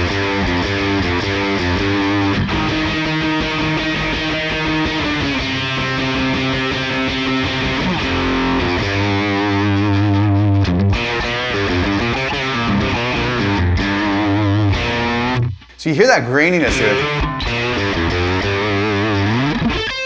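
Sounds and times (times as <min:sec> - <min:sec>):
distorted electric guitar: 0:00.0 - 0:15.8.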